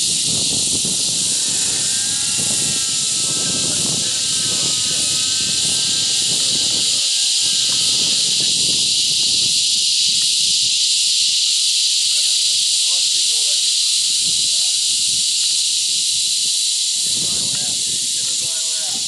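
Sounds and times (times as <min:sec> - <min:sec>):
loud high hiss: 0:00.0 - 0:19.0
rc helicopter engine and rotor: 0:00.0 - 0:19.0.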